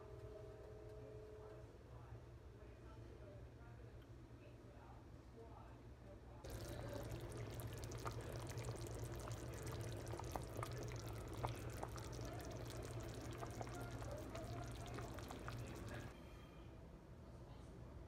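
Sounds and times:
stew boiling and bubbling: 6.5s - 16.2s.

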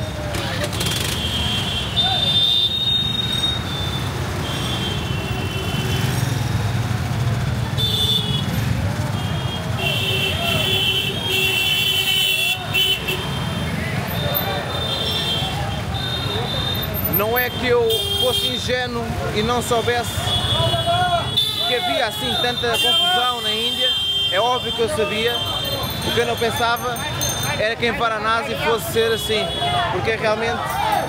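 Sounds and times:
vehicle horns honking: 0.0s - 6.3s, 7.7s - 18.9s, 19.6s - 26.6s, 28.6s - 30.0s
engines rumbling: 0.0s - 31.0s
crowd voices: 6.5s - 31.0s.

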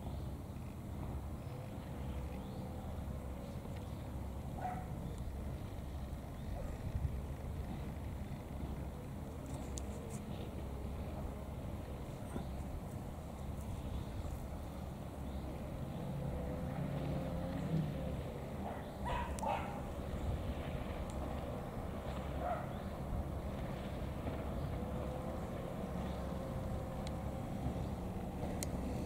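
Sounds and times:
distant boat engines droning: 0.0s - 29.0s.

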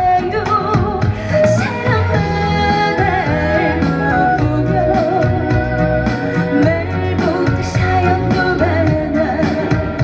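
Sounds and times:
bass line and drums: 0.0s - 10.0s
woman singing into microphone: 0.0s - 10.0s.

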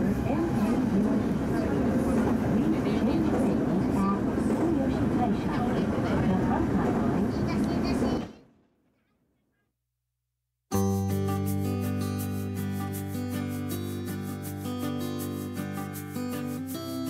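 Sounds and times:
train rumble from inside: 0.0s - 8.6s
people's voices: 0.0s - 9.1s.

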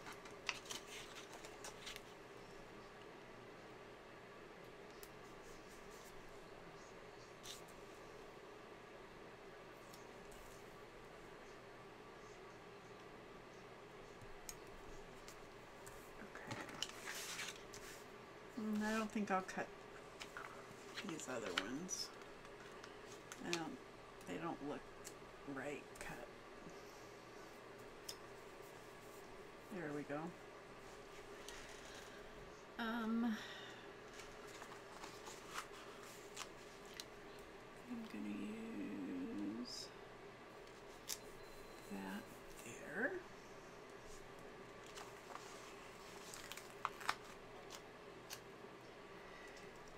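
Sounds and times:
paper rustling: 0.0s - 2.2s, 16.4s - 18.1s, 34.1s - 37.1s, 44.8s - 47.8s.

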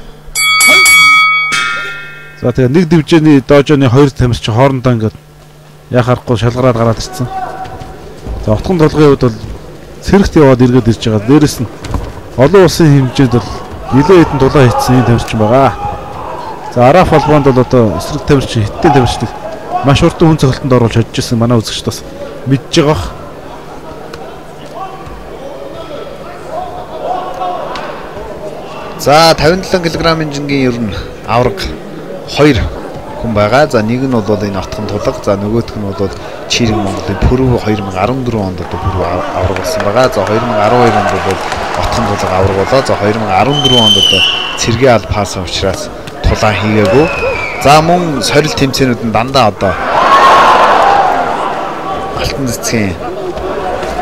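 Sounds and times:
two-note chime: 0.4s - 2.8s
crowd noise: 5.6s - 54.0s.

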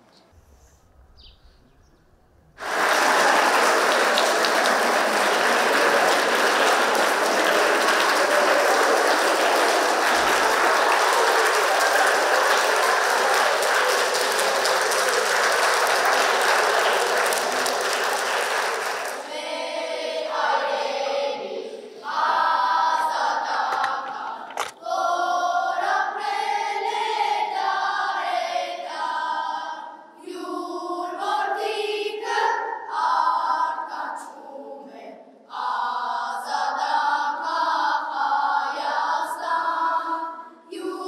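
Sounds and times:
children applauding: 2.6s - 19.3s, 23.6s - 24.8s
children singing together: 2.6s - 41.0s.

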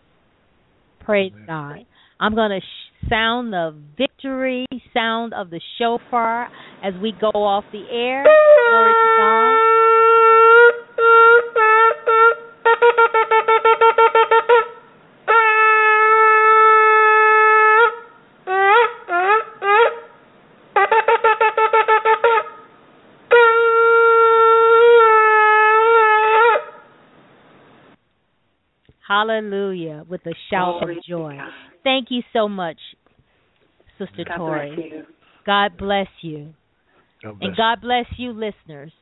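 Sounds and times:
shofar blasts: 8.2s - 20.2s, 20.8s - 26.9s.

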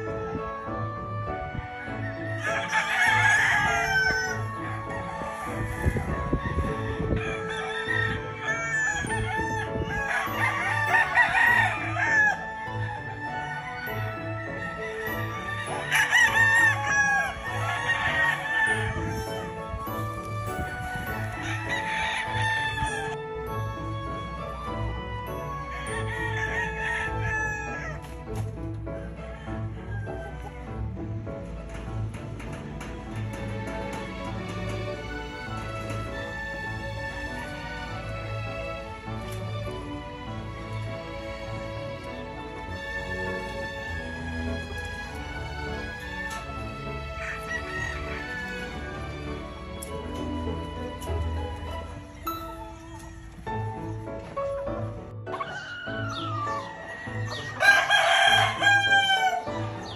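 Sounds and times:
roosters crowing: 0.0s - 54.0s, 55.3s - 59.9s
background music with steady beat: 0.0s - 59.9s.

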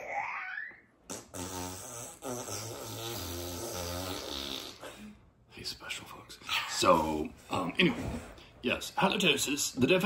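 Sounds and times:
fart noise: 1.0s - 4.9s.

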